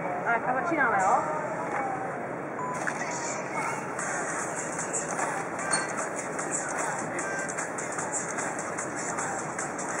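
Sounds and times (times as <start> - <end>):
road traffic: 0.0 - 10.0.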